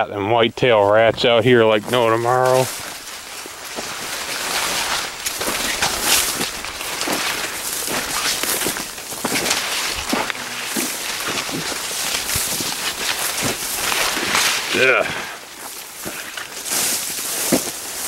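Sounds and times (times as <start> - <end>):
corn leaves rustling: 0.0 - 18.0.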